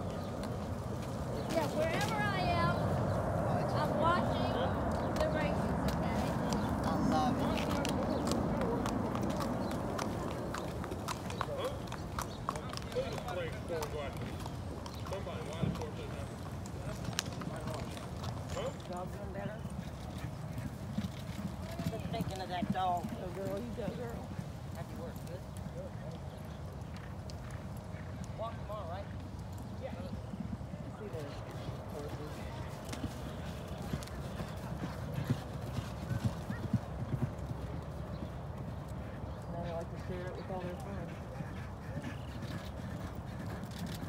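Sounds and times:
hoofbeats on dirt: 0:00.0 - 0:04.2, 0:04.8 - 0:44.0
hooves clip-clopping on road: 0:00.0 - 0:44.0
people talking: 0:01.4 - 0:02.8, 0:03.5 - 0:09.0.

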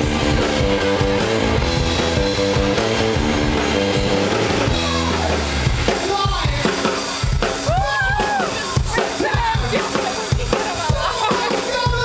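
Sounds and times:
guitar sliding down in pitch: 0:00.0 - 0:06.2
live rock band playing: 0:00.0 - 0:12.0.

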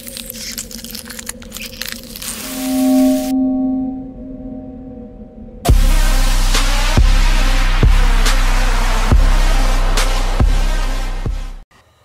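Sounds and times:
low synth drone: 0:00.4 - 0:10.0
held synth chord: 0:02.4 - 0:07.7.

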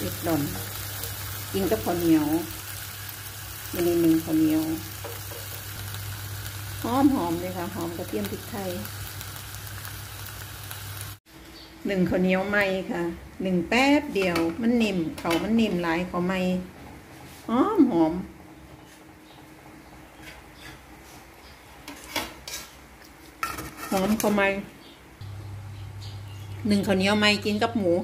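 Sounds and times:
meat sizzling in a pan: 0:00.0 - 0:11.2.

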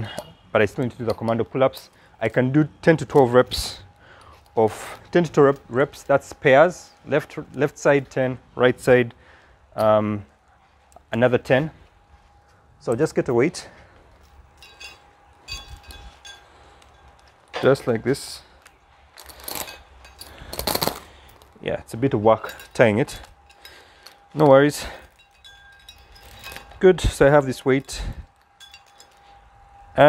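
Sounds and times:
metallic clinks and jingles: 0:00.0 - 0:08.2, 0:09.7 - 0:30.0
metal chain clinking on weight plate: 0:14.2 - 0:18.5, 0:19.1 - 0:21.6, 0:22.3 - 0:29.4.

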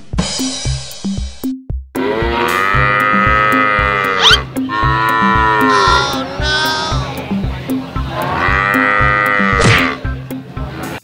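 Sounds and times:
music with drum-machine beat: 0:00.0 - 0:10.4
cow mooing: 0:02.0 - 0:07.1, 0:08.1 - 0:10.0.

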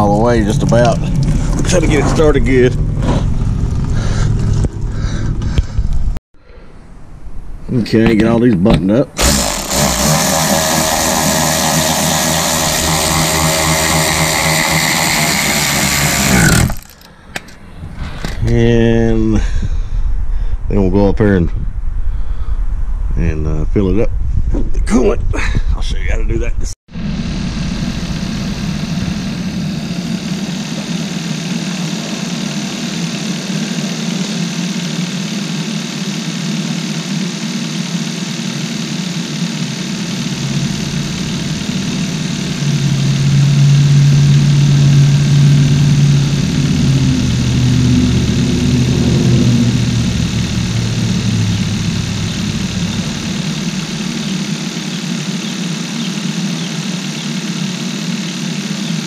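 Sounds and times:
car engine idling: 0:00.0 - 0:06.1, 0:27.0 - 0:59.0
deeper hum dropping in pitch: 0:00.0 - 0:06.2, 0:09.2 - 0:20.3, 0:26.9 - 0:59.0.

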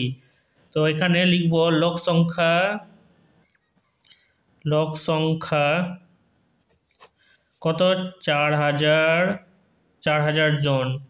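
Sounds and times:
man talking: 0:00.0 - 0:03.0, 0:04.6 - 0:06.0, 0:07.6 - 0:09.4, 0:10.0 - 0:11.0.

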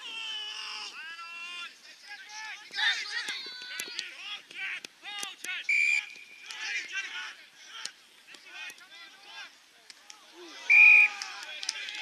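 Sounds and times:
players shouting: 0:00.0 - 0:12.0
whistle blast: 0:05.7 - 0:06.4, 0:10.7 - 0:11.1.

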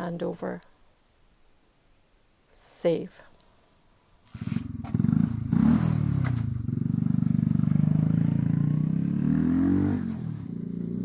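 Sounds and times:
motorcycle engine revving: 0:04.3 - 0:11.0.

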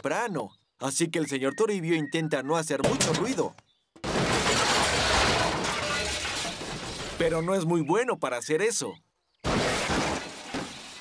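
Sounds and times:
rubbish crashing into bin lorry: 0:04.0 - 0:07.4, 0:09.5 - 0:11.0.

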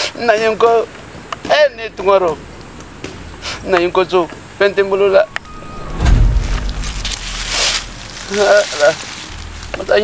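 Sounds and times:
loud low rumble: 0:05.3 - 0:10.0.

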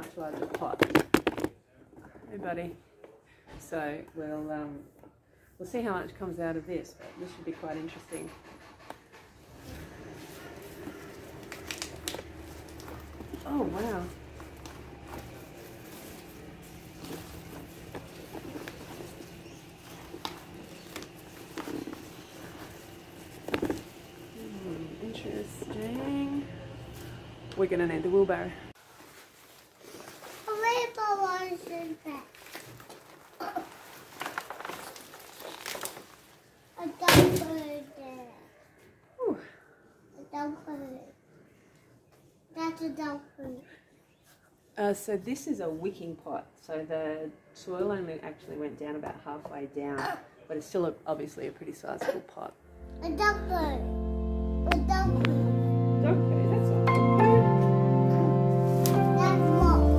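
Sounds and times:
dry leaves and soil rustling: 0:10.0 - 0:27.2, 0:28.8 - 0:36.5
low steady hum: 0:10.4 - 0:28.8, 0:52.6 - 0:59.9.

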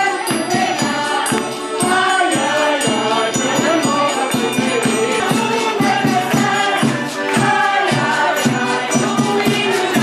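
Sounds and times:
group of voices singing: 0:00.0 - 0:10.0
jingling tambourine percussion: 0:00.0 - 0:10.0.

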